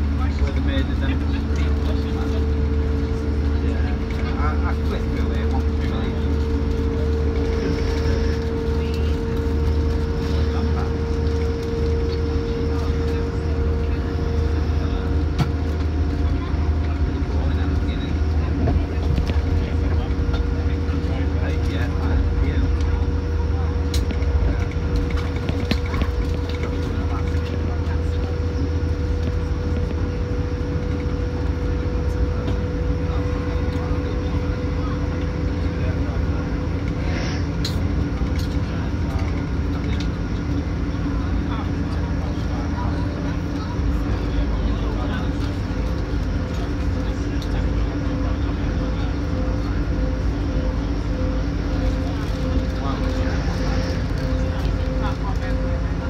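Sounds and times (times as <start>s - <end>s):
constant hum: 0.0s - 56.0s
train low rumble: 0.0s - 56.0s.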